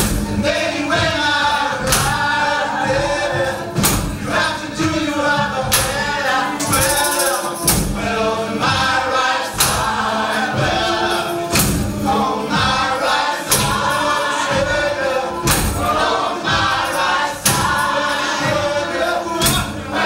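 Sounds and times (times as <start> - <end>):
drum beat: 0.0 - 20.0
group singing gospel song: 0.0 - 20.0
tambourines and hand percussion: 0.0 - 20.0.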